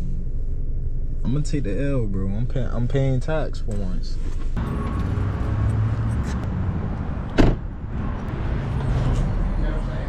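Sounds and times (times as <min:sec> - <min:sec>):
low outdoor rumble: 0:00.0 - 0:10.0
car door slamming: 0:07.3 - 0:07.7.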